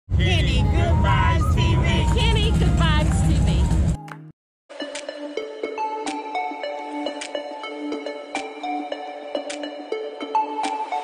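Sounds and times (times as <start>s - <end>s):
dense low rumble: 0.1s - 4.0s
wavering voice-like tones: 0.3s - 4.1s.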